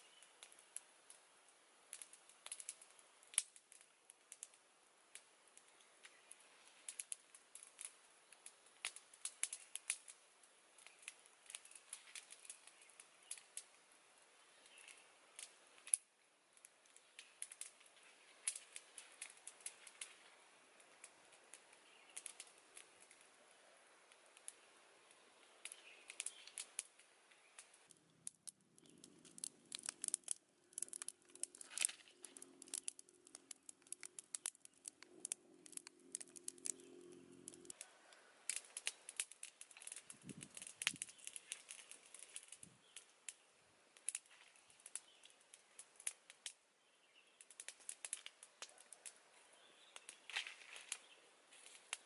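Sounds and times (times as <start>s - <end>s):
wood fire crackling: 0.0s - 52.0s
leaves rustling: 5.3s - 27.9s, 28.8s - 52.0s.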